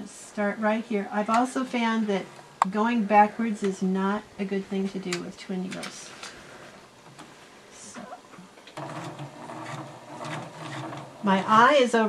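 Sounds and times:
sewing machine running: 8.8s - 11.5s.

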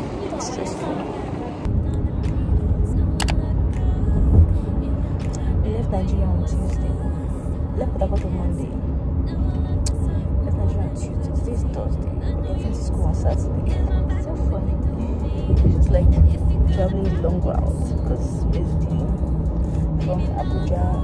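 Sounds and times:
people talking: 0.0s - 1.7s, 5.6s - 6.9s, 7.8s - 8.8s, 9.9s - 14.9s, 15.6s - 19.2s, 20.0s - 21.0s
car road rumble: 0.0s - 21.0s
music: 1.7s - 21.0s.

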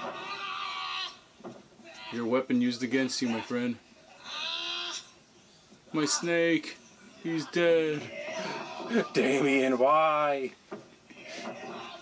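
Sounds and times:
drawn-out vocal cry: 0.0s - 2.4s, 3.2s - 5.2s, 7.2s - 9.4s, 11.1s - 12.0s.

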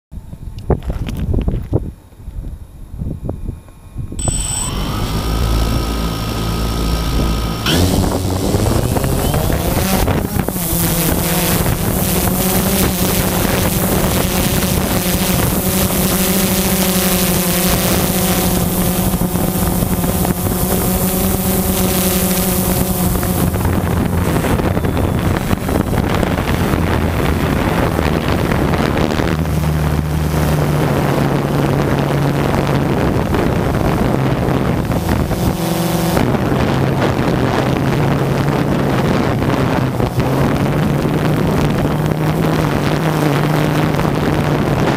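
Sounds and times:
wind rushing over microphone: 0.1s - 44.9s
drone motors whining: 3.2s - 32.9s.

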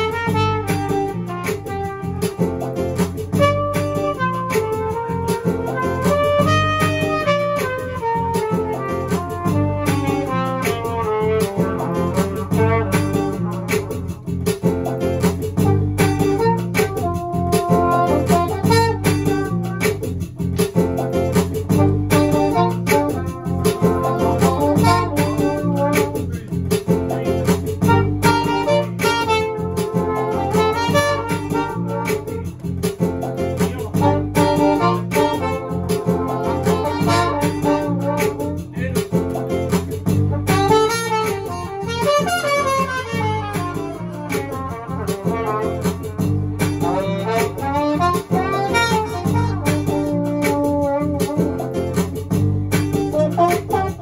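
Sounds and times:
trumpet solo: 0.0s - 14.4s, 15.6s - 20.3s, 21.7s - 26.5s, 27.8s - 38.9s, 40.1s - 52.1s, 52.9s - 54.0s
strummed acoustic guitar: 0.0s - 54.0s.

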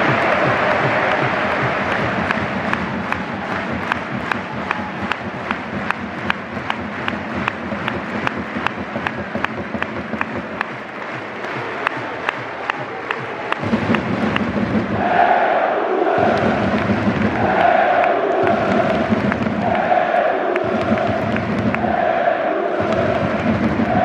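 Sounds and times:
sharp drum beat: 0.0s - 24.0s
stadium crowd applauding and cheering: 0.0s - 24.0s.

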